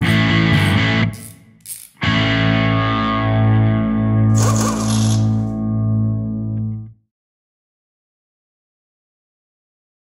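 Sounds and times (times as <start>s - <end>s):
distorted electric guitar chord: 2.0s - 4.3s.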